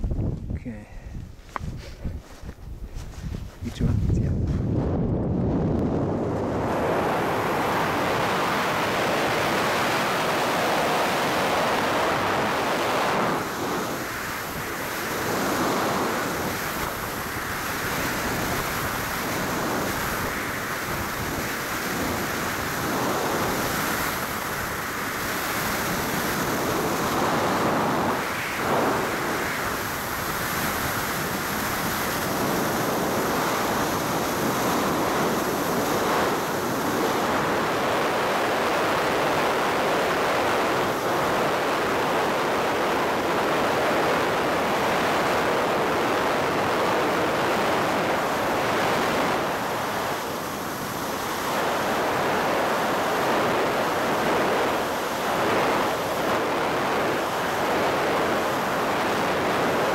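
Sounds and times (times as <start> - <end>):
wind rushing over microphone: 0.0 - 59.9.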